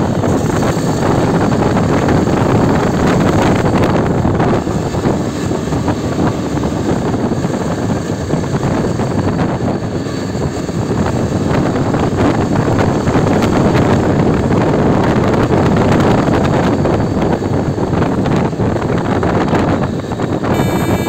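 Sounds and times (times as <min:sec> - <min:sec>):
wind rushing over microphone: 0:00.0 - 0:21.0
motorcycle engine running: 0:20.5 - 0:21.0.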